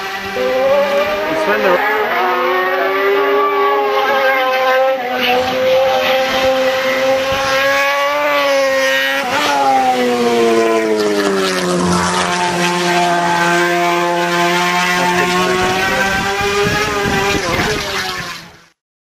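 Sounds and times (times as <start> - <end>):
motorcycle engine running hard: 0.0 - 18.7.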